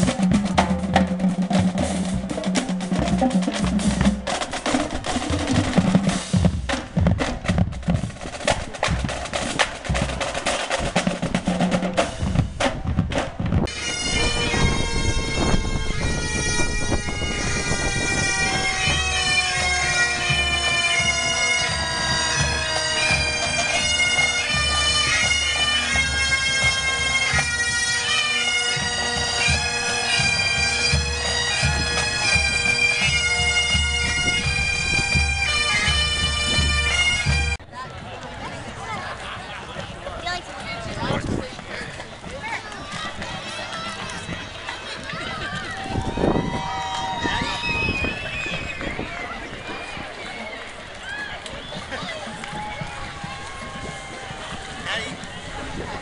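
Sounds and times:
bass drum beating: 0.0 - 24.8
marching band drums: 0.0 - 37.7, 38.6 - 56.0
bagpipes playing melody: 13.7 - 37.6.

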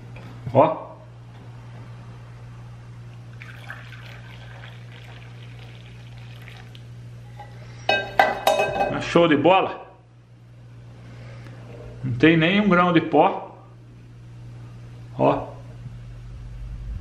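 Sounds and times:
coffee pouring into glass: 3.3 - 6.9.

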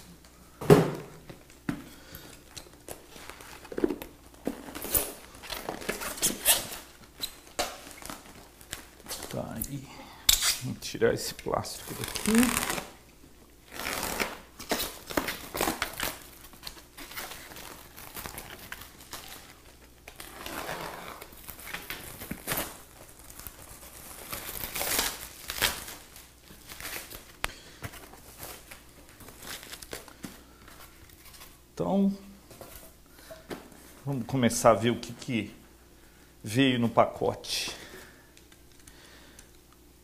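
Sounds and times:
plastic wrap crinkling and tearing: 2.7 - 9.6, 11.7 - 13.0, 13.7 - 27.4, 28.0 - 31.6
person speaking: 9.1 - 12.7
knife slitting plastic wrap: 11.9 - 13.0.

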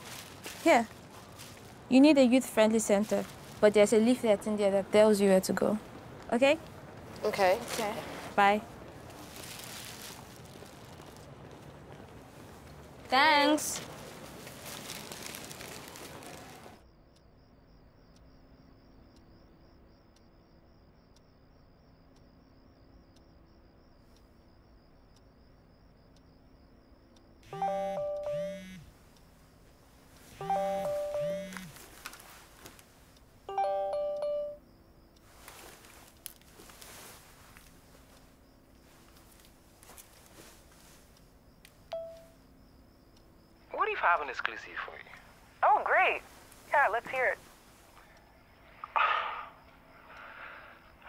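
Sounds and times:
faint handling noise: 6.6 - 13.1, 35.2 - 41.2
low buzz: 17.1 - 29.0
phone ringtone chime: 27.5 - 28.7, 30.4 - 31.6, 33.5 - 34.6, 41.9 - 42.3
soft faint breath: 47.6 - 51.0
sharp burst of breath: 48.9 - 50.8.

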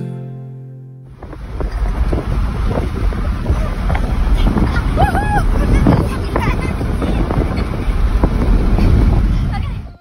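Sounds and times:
wind buffeting microphone: 1.1 - 10.0.

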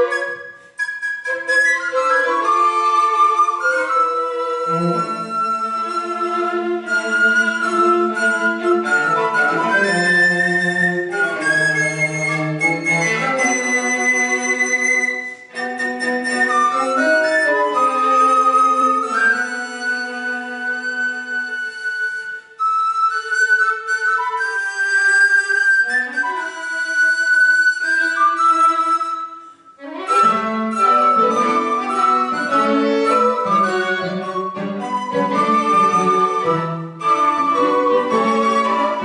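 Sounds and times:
recorder melody: 0.0 - 39.0
string quartet playing: 0.0 - 39.0
low cello notes: 1.9 - 21.3.

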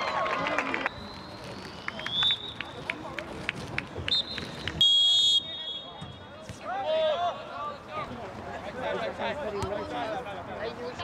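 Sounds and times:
murmur of spectators talking: 0.0 - 11.0
referee's whistle blast: 4.1 - 6.2.

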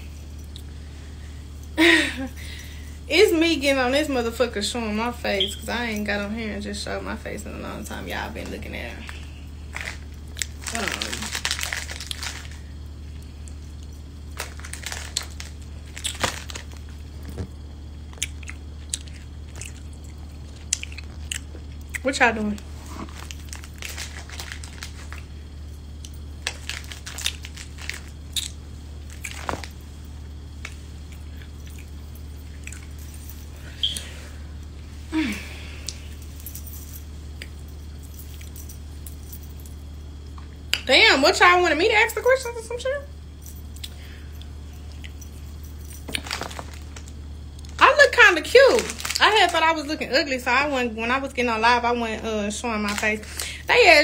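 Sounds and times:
steady low hum: 0.0 - 54.0
rustling of braids being handled: 5.4 - 17.6, 22.1 - 39.7, 43.4 - 47.2.

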